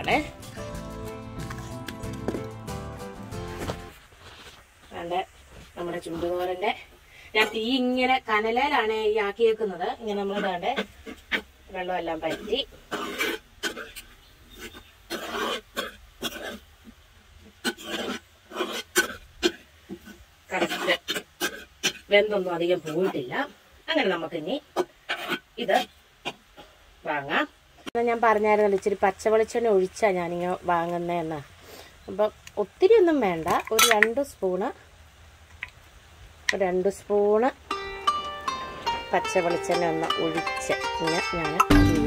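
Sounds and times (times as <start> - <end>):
person talking: 0.0 - 2.3, 39.0 - 42.0.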